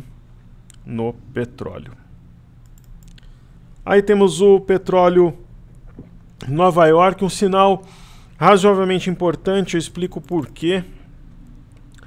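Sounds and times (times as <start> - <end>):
man speaking: 0.8 - 2.1, 3.8 - 5.5, 6.4 - 11.1
computer mouse clicks: 2.6 - 3.3.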